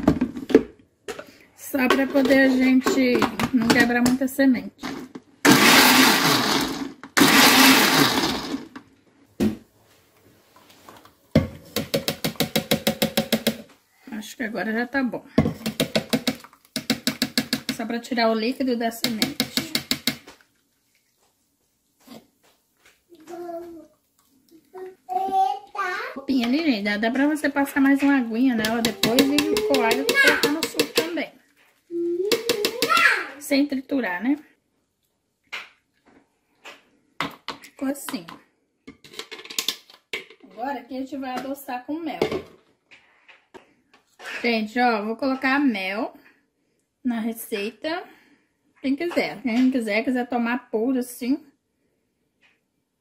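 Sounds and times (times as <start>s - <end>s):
woman speaking: 1.6s - 4.9s, 14.1s - 15.4s, 17.7s - 19.8s, 26.3s - 31.4s, 37.8s - 38.4s.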